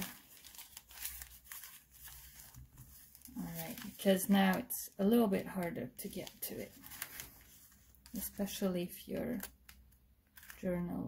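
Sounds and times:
paper bag rustling and crinkling: 0.0 - 4.7, 5.4 - 9.7.

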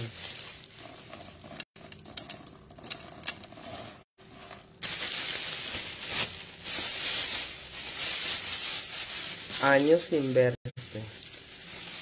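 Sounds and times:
plastic bags rustling: 0.0 - 1.3, 3.6 - 12.0.

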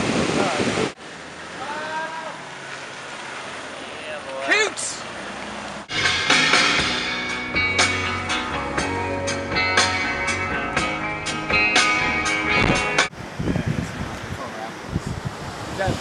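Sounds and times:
surf and wind on microphone: 0.0 - 1.0, 12.6 - 16.0
rock music with guitar: 5.9 - 13.1.

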